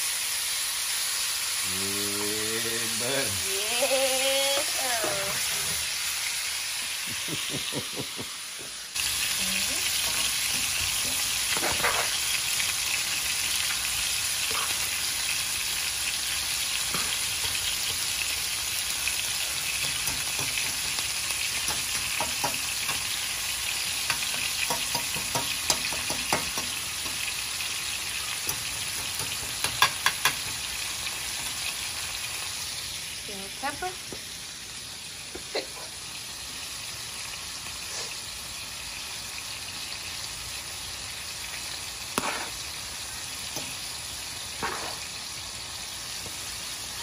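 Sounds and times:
meat and onions sizzling in a pan: 0.0s - 47.0s
fork and spoon scraping a pan: 10.0s - 12.2s, 14.4s - 14.9s, 42.2s - 42.7s, 44.6s - 45.1s.

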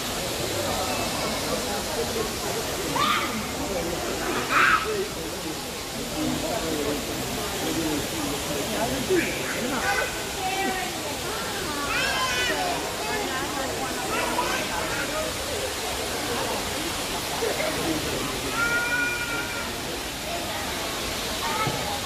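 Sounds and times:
distant chatter of visitors: 0.0s - 22.0s
rushing hiss: 0.0s - 22.0s.

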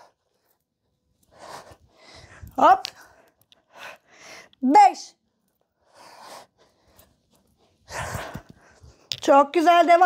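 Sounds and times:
woman breathing hard: 1.2s - 4.6s, 7.8s - 9.0s.

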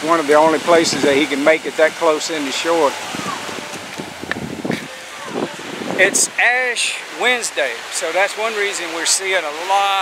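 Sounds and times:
small waves washing onto sand: 0.0s - 10.0s
wind buffeting microphone: 2.7s - 6.6s.

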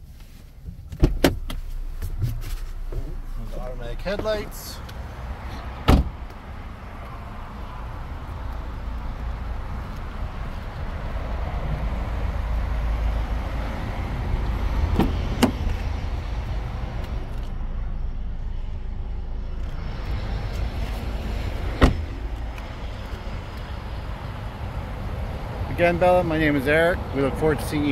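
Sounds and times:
steady low rumble: 0.0s - 25.8s
car door shutting: 0.6s - 3.2s, 5.8s - 6.3s, 14.9s - 15.9s, 21.6s - 22.2s.

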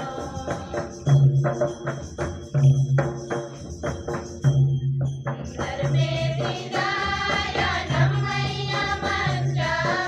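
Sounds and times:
group of voices singing: 0.0s - 1.2s, 5.5s - 10.0s
jingling tambourine-like rattle: 0.0s - 10.0s.

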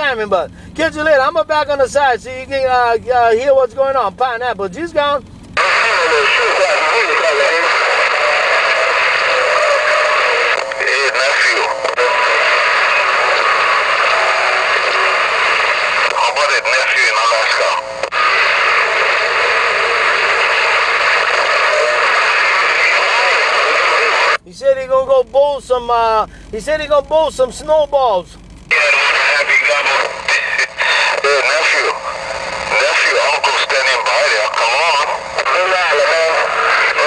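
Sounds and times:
garbled radio voices: 0.0s - 37.0s
radio static: 0.0s - 37.0s.

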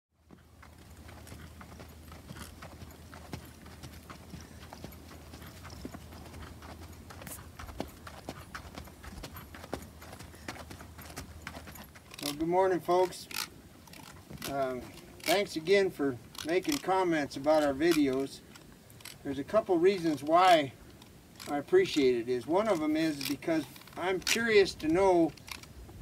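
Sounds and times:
horse hoofbeats on dirt: 0.1s - 20.8s, 21.4s - 26.0s
steady low hum: 0.2s - 16.6s.

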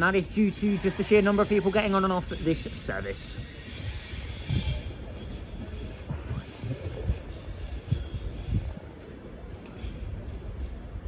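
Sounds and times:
train wheels rumbling on track: 0.0s - 11.0s
faint wheel squeal: 0.7s - 6.0s.

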